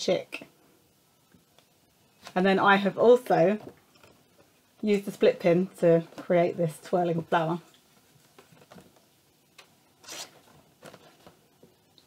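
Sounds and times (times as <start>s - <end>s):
paper card rustling: 10.0s - 11.4s.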